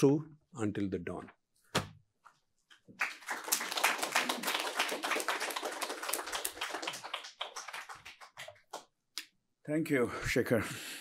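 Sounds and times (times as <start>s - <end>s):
audience applauding: 3.0s - 8.8s.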